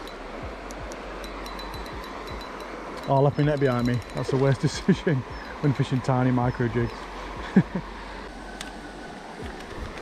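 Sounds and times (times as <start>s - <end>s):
faint light ticks: 0.0s - 4.3s, 8.2s - 8.8s
running water: 0.0s - 10.0s
wind: 0.0s - 10.0s.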